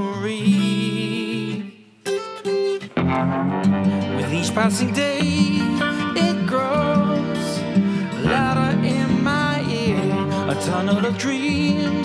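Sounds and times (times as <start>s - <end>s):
strummed guitar chords: 0.0s - 12.0s
guitar notes ringing: 2.1s - 12.0s.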